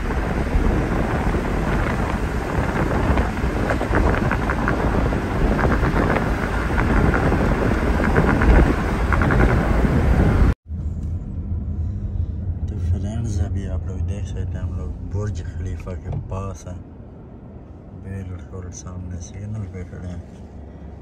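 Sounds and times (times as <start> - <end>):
wind buffeting microphone: 0.0 - 12.7
low road rumble inside car: 0.0 - 21.0
road noise from a car: 0.0 - 21.0.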